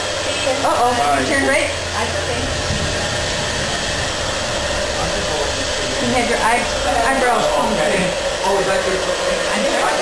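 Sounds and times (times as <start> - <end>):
hair dryer running: 0.0 - 10.0.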